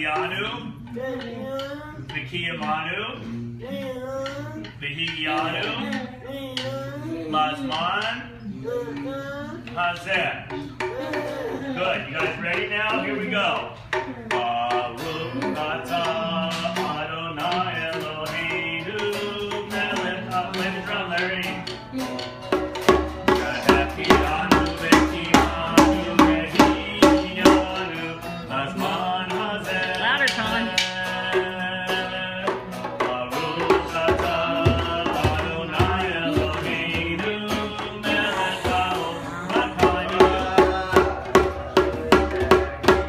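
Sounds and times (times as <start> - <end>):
voices singing: 0.0 - 43.0
ukulele strumming: 10.1 - 43.0
strong beat: 13.7 - 43.0.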